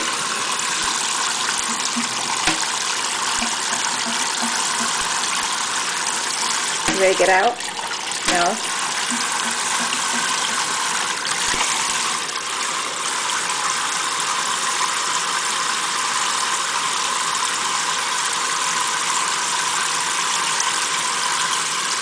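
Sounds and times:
faucet spraying water into sink: 0.0s - 16.0s.

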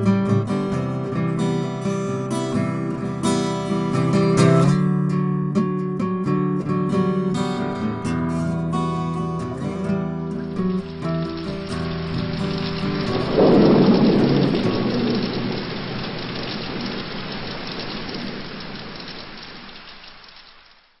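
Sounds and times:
rain hissing: 9.4s - 21.0s
thunder rumbling: 10.4s - 20.9s.

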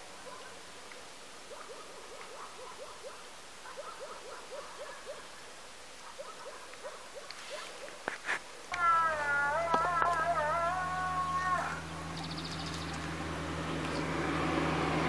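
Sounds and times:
animal calling with short low notes: 8.7s - 12.6s.

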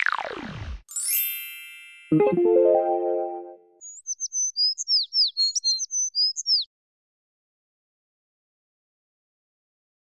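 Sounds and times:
music chord ringing: 2.1s - 3.6s
high bird chirps: 3.8s - 6.7s.

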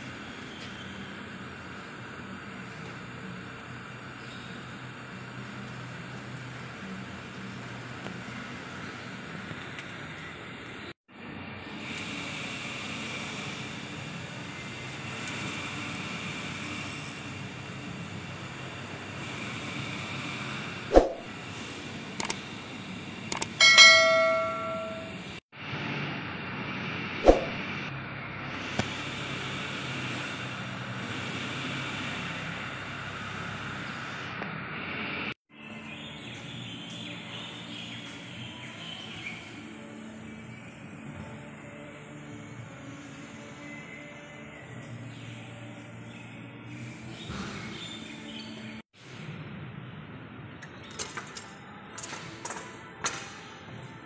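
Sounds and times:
sharp metal knock: 23.6s - 25.2s
ringing metallic clang: 23.6s - 25.4s.

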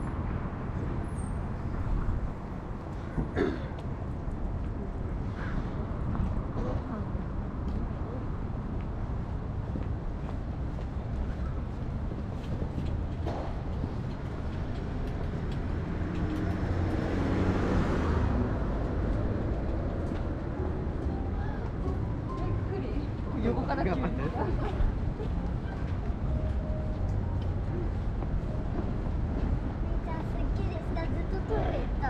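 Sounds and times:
low hum of road traffic: 0.0s - 32.0s
motor vehicle passing: 13.6s - 23.4s.

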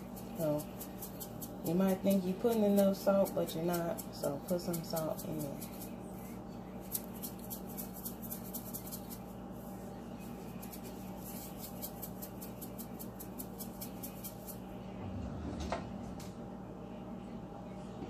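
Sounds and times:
salt rattling from shaker: 0.0s - 14.6s.

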